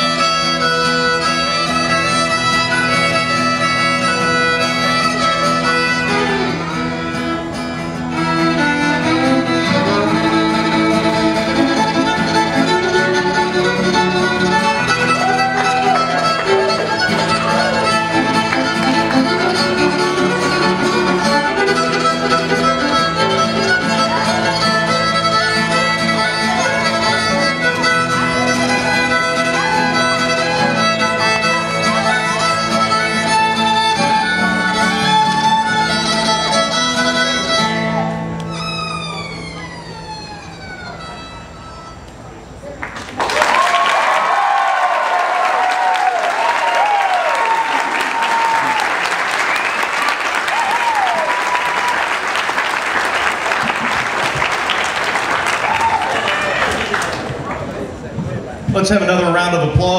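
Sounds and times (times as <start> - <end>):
fiddle playing fast tune: 0.0 - 42.4, 46.4 - 57.3
acoustic guitar backing: 0.0 - 43.0
audience applause and cheering: 15.0 - 19.7, 42.8 - 58.0.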